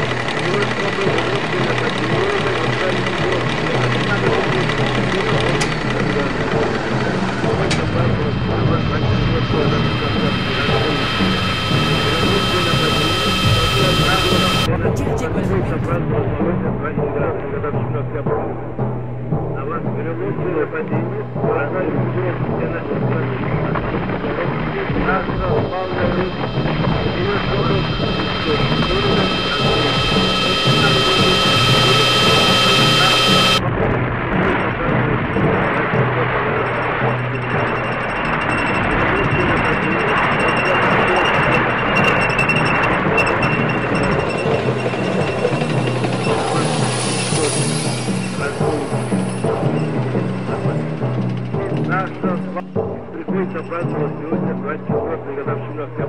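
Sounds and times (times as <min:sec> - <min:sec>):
thin high whine: 0:00.0 - 0:16.0, 0:23.8 - 0:33.7, 0:35.4 - 0:51.2
high drones: 0:00.0 - 0:16.3, 0:21.8 - 0:53.7.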